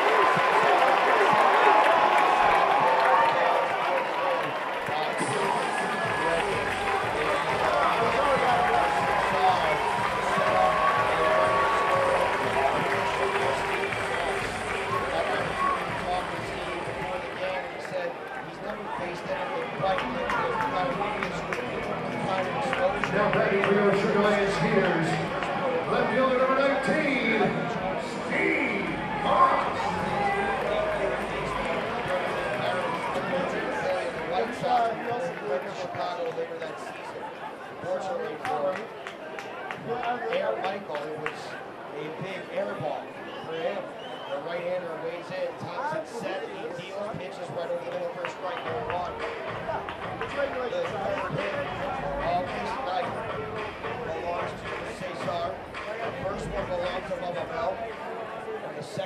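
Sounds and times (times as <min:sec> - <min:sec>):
crowd chatter: 0:00.0 - 0:59.0.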